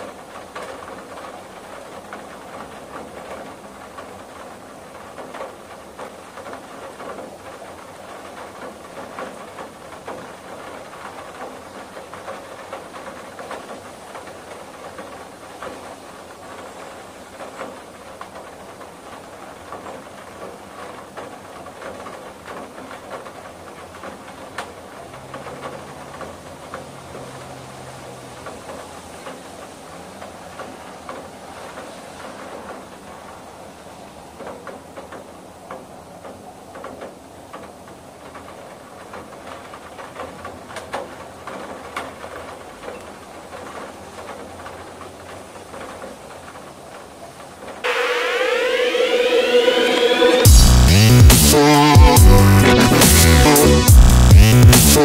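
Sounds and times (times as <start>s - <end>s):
rain on a window: 0.0s - 51.0s.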